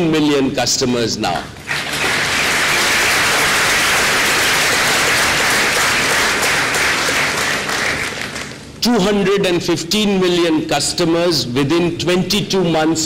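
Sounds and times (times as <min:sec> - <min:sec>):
large audience applauding: 0:01.6 - 0:08.7.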